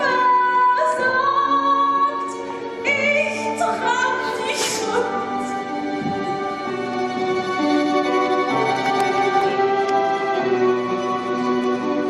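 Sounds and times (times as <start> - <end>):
orchestra playing held chords: 4.2 - 12.0.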